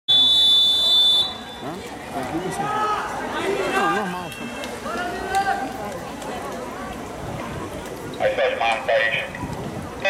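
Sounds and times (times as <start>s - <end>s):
voices: 1.2s - 10.0s.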